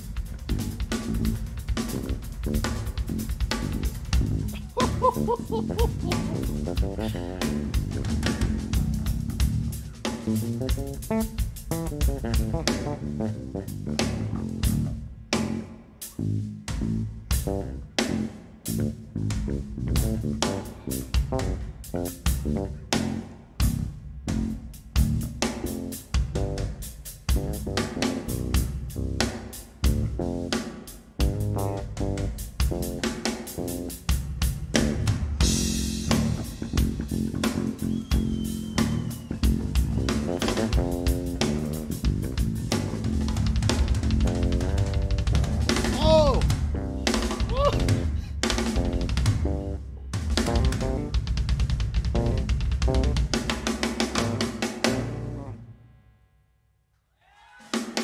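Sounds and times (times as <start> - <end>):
electric bass guitar: 0.0 - 29.3, 29.9 - 30.6, 31.2 - 33.0, 34.7 - 51.2, 52.0 - 53.3, 54.2 - 55.6
drum kit playing fast groove: 0.0 - 55.6.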